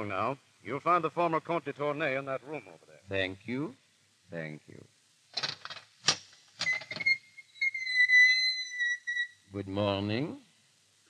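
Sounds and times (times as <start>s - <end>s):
door hinge squealing: 6.6s - 9.4s.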